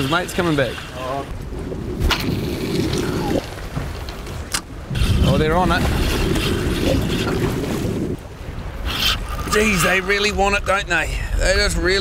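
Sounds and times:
muffled sea water rumble: 0.0s - 12.0s
wind on microphone: 0.0s - 12.0s.

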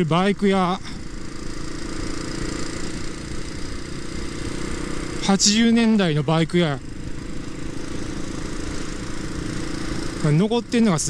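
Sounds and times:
motorcycle engine running: 0.0s - 11.0s
wind and road noise: 0.0s - 11.0s.

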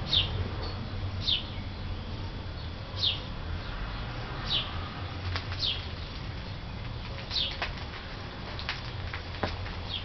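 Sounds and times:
small bird chirping: 0.0s - 4.8s, 5.5s - 7.7s.

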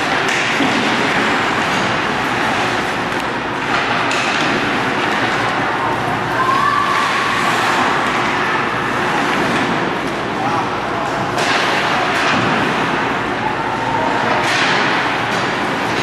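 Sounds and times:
ice hockey arena noise: 0.0s - 16.0s.

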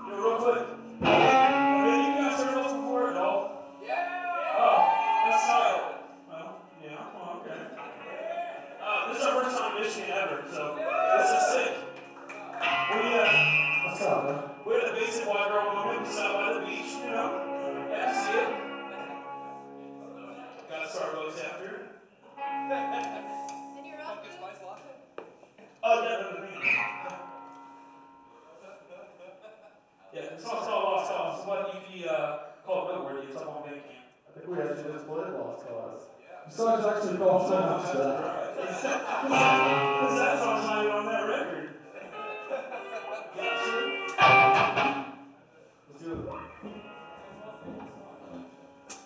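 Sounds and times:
electric guitar chords: 0.0s - 3.8s, 11.5s - 20.7s, 22.2s - 24.4s, 26.6s - 28.4s, 39.2s - 41.1s, 42.1s - 45.4s, 46.2s - 49.0s.

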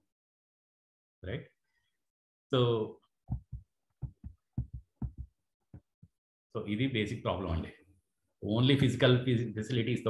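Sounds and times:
soft low thumps: 3.3s - 5.9s.

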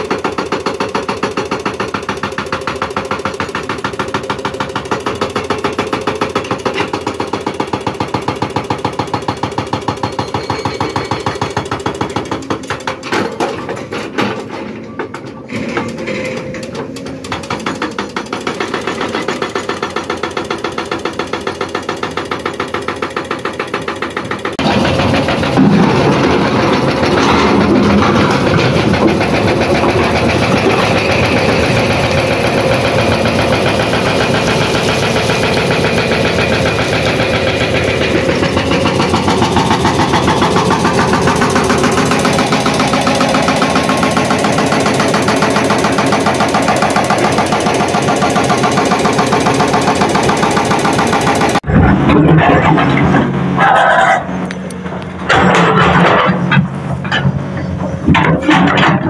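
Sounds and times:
hydraulic rock breaker hammering: 0.0s - 53.6s, 54.3s - 59.0s
diesel engine running: 15.0s - 59.0s.

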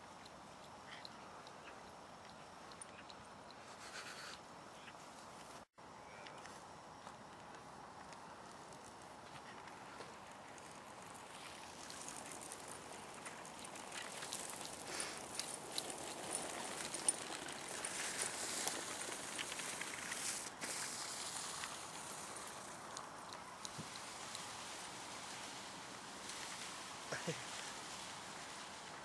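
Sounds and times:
wheels rolling over grass and snow: 5.0s - 29.0s.

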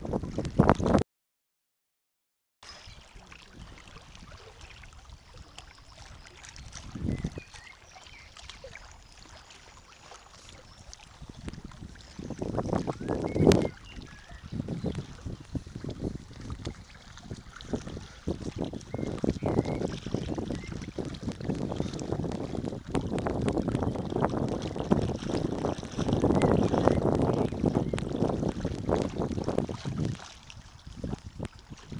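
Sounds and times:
wind buffeting microphone: 0.0s - 1.0s, 2.9s - 31.9s
small waves lapping on stones: 2.7s - 14.1s.

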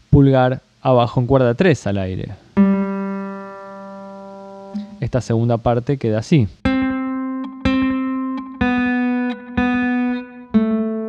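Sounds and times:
acoustic guitar string ringing: 2.6s - 5.1s, 6.6s - 11.0s.

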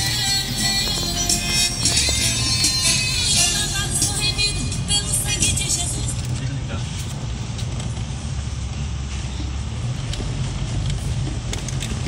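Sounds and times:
music with singing: 0.0s - 6.2s
vehicle engine and road rumble: 0.0s - 12.0s.

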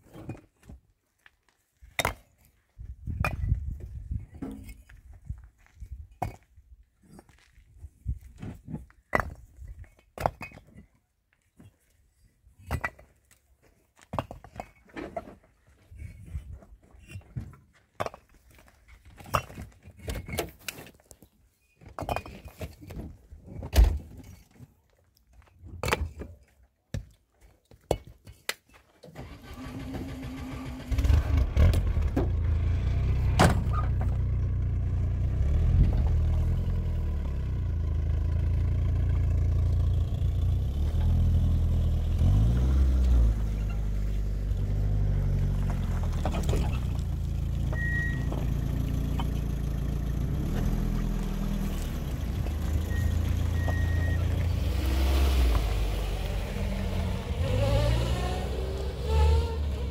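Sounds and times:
engine starting and running: 29.0s - 59.9s.

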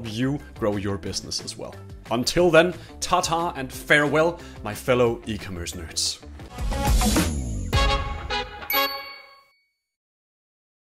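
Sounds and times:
bell-like chime notes: 8.6s - 10.0s.

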